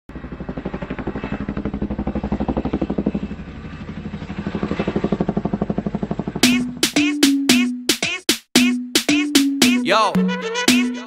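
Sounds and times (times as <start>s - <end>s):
helicopter rotor chop: 0.1s - 8.2s.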